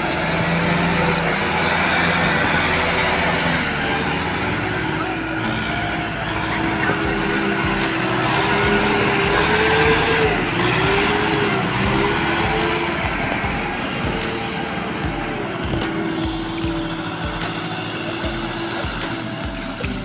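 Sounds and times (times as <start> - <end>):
tractor engines under heavy load: 0.0 - 20.0.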